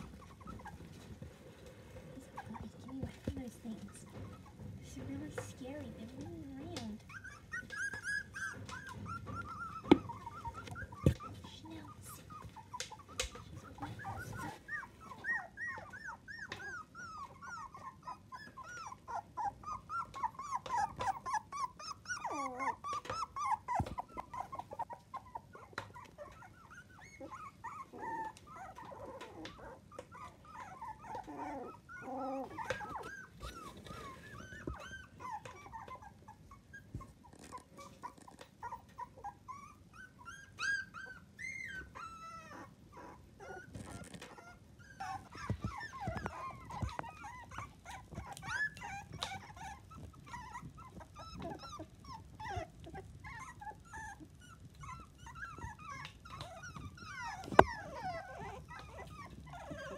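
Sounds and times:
puppies whimpering: 0.0 - 59.9.

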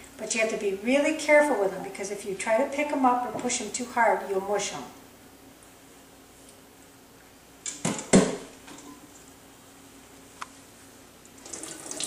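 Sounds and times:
water pouring from saucepan: 11.4 - 12.0.

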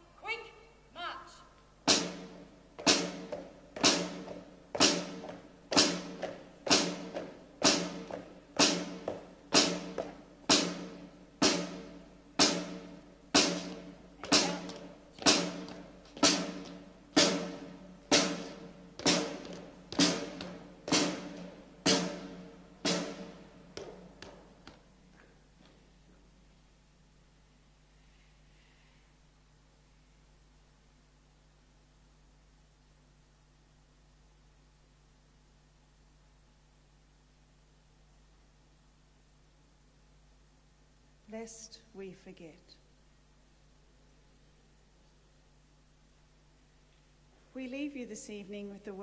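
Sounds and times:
side drum march beat: 1.9 - 25.1.

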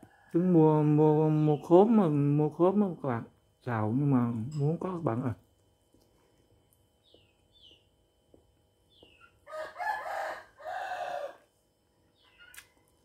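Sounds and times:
rooster crowing: 9.4 - 11.5.

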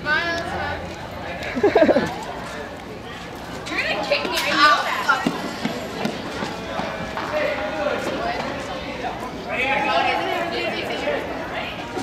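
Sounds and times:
students chattering: 0.0 - 12.0.

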